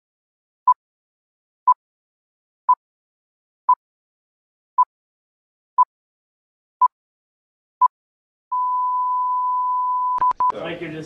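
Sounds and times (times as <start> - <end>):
steady test tone beep: 8.5 - 10.6.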